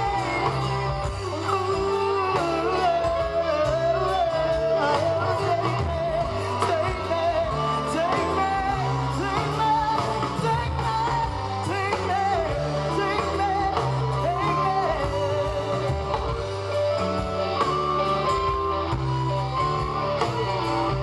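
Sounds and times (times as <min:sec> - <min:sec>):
bass guitar: 0:00.0 - 0:21.0
drum kit: 0:00.0 - 0:21.0
electric guitar: 0:00.0 - 0:21.0
woman singing lead: 0:00.0 - 0:21.0.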